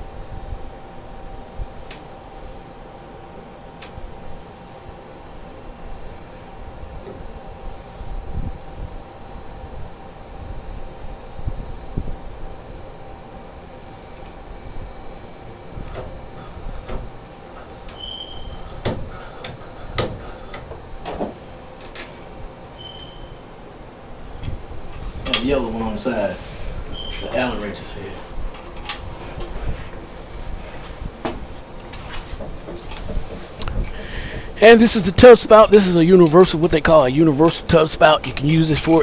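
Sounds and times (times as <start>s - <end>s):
low handling rumble: 5.9s - 39.0s
short high chirps: 22.8s - 23.4s.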